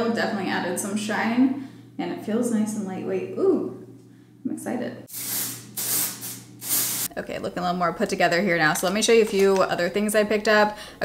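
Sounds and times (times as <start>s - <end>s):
aerosol spray hissing: 5.1s - 7.1s.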